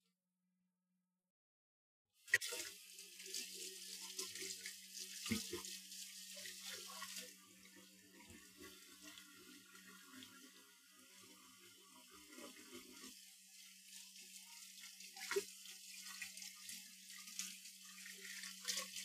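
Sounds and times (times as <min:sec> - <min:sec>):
dishes washed in sink: 0:02.3 - 0:07.4
kitchen tap running: 0:02.3 - 0:19.0.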